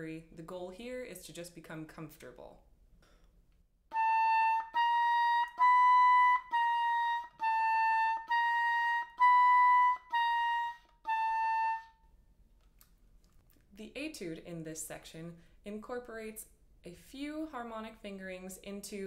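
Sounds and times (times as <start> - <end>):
oboe playing detached notes: 3.9 - 12.0.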